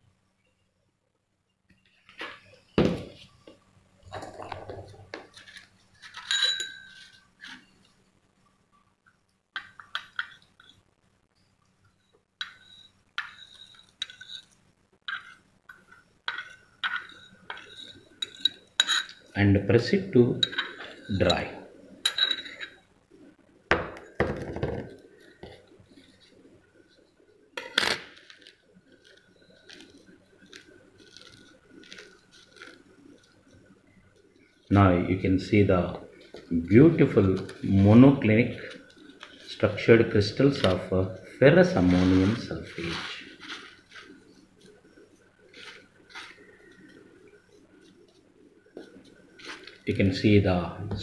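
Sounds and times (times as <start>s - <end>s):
low room noise: 0.0s - 51.0s
spatula scraping crystals on paper: 12.4s - 19.3s, 28.2s - 33.4s, 41.6s - 44.8s, 45.4s - 47.0s.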